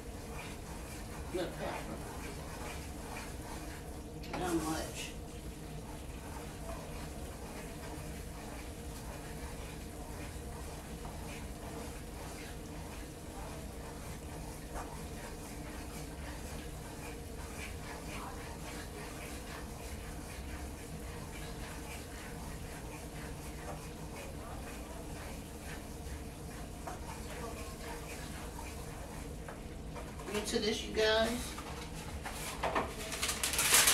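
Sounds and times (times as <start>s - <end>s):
wooden spoon scraping a pan: 0.0s - 5.0s, 6.0s - 33.9s.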